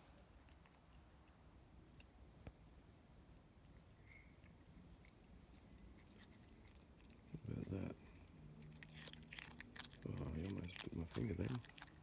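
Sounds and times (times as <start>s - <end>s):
faint chewing clicks: 0.0s - 2.6s, 3.6s - 12.0s.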